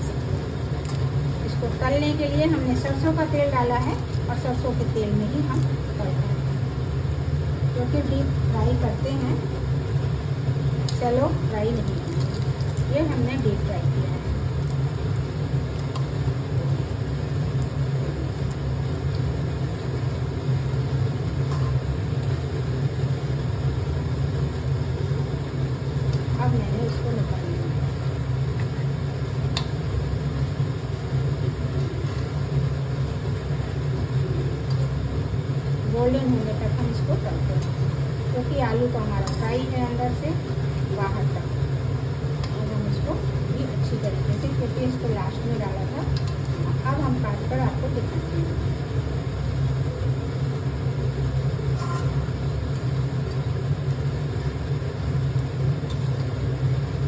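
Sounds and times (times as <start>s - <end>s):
bread deep-frying in oil: 0.0s - 57.0s
range hood fan humming: 0.0s - 57.0s.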